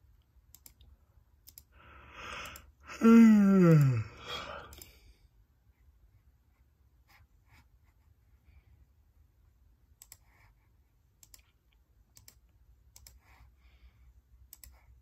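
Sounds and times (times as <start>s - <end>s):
computer mouse clicks: 0.5s - 1.7s, 10.0s - 10.4s, 11.2s - 13.3s, 14.4s - 15.0s.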